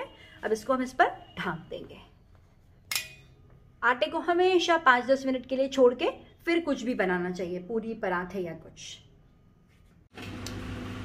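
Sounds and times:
woman speaking: 0:00.0 - 0:02.2, 0:03.8 - 0:09.1.

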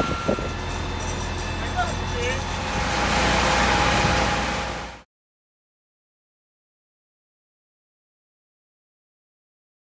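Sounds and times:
fire engine rumbling: 0:00.0 - 0:05.0.

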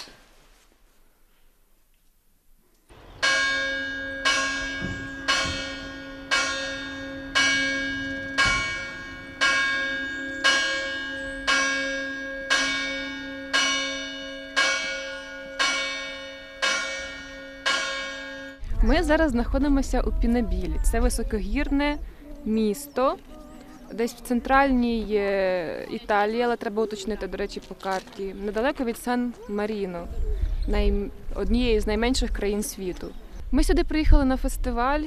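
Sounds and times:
church bell tolling: 0:02.9 - 0:18.7.

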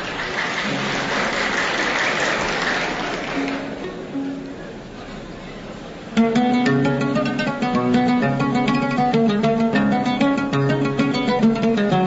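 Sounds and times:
audience applauding: 0:00.0 - 0:03.8
orchestra plucked strings: 0:06.0 - 0:12.0.

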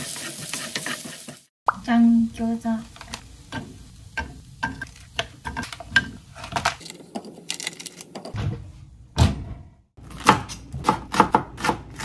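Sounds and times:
knife chopping on cutting board: 0:10.1 - 0:12.0.

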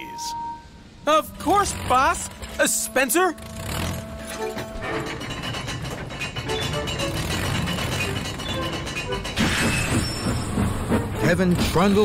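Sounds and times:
steam locomotive rumbling past: 0:03.4 - 0:12.0.

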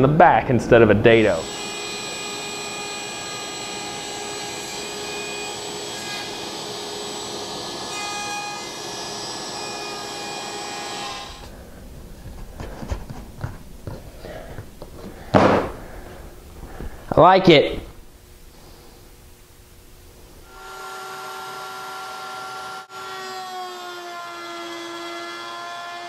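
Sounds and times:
table saw motor whine: 0:01.4 - 0:11.5, 0:20.4 - 0:26.0
loud thump: 0:15.3 - 0:15.8.

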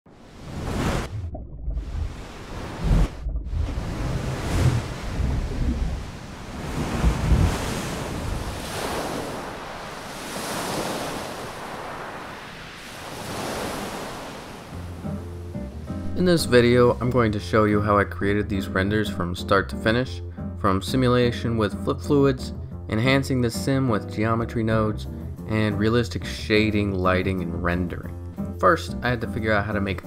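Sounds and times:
waves breaking on shore: 0:00.1 - 0:17.2.

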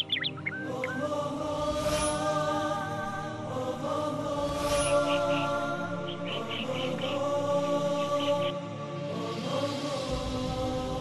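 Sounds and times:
bird chirps: 0:00.0 - 0:01.1, 0:04.9 - 0:08.6
slow vocal chant: 0:00.0 - 0:11.0.

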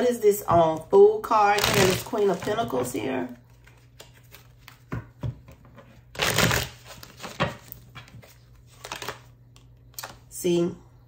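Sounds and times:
card deck rustling: 0:01.6 - 0:05.0, 0:06.2 - 0:09.3
cards being shuffled: 0:01.6 - 0:10.2.

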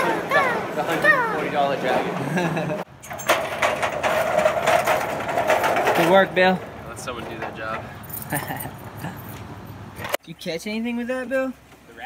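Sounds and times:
casters and frame rattling: 0:00.1 - 0:10.2
shopping cart rolling on wet asphalt: 0:03.3 - 0:07.7.

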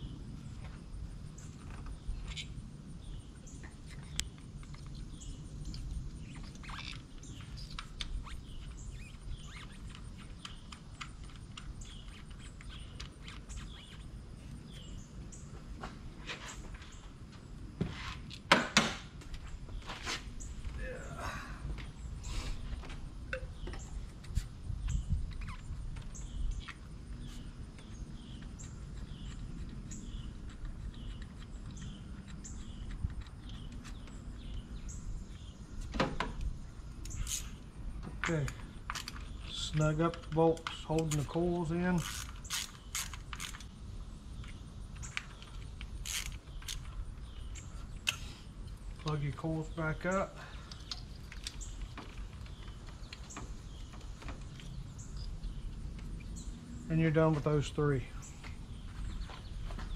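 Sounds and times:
bird chirping: 0:01.4 - 0:15.6, 0:23.3 - 0:35.9, 0:36.6 - 0:59.9.

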